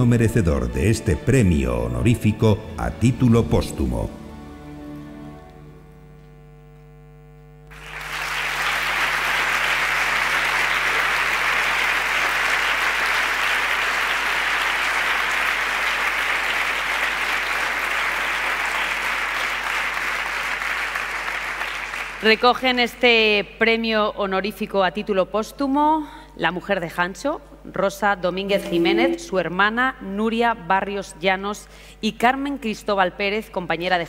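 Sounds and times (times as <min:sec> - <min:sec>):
audience applauding: 0:07.7 - 0:22.5
held music notes: 0:28.5 - 0:29.5.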